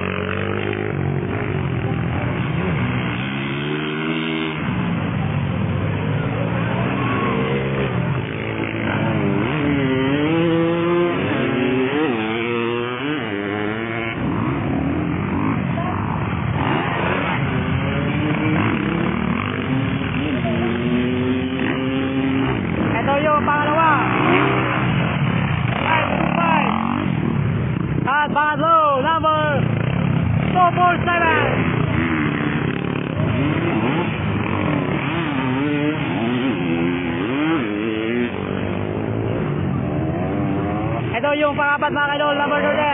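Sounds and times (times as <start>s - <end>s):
dirt bike engines revving: 0.0s - 42.9s.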